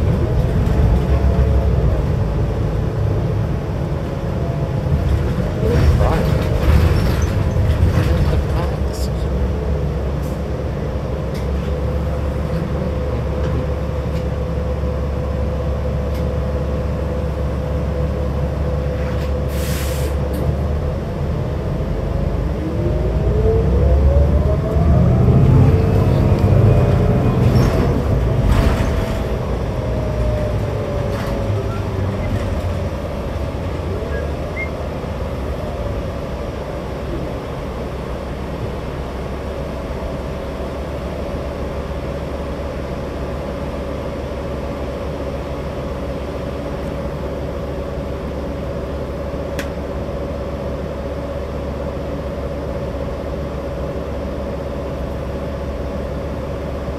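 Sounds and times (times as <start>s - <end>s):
bus engine drone: 0.0s - 56.9s
short air hiss: 19.5s - 20.2s
engine whine: 20.1s - 56.9s.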